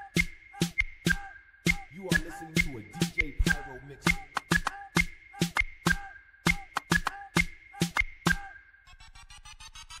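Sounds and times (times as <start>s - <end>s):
hip hop beat: 0.0s - 10.0s.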